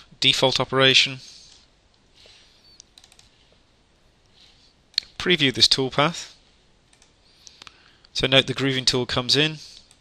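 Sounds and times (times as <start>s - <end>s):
mouse and keyboard clicks: 2.7s - 3.3s.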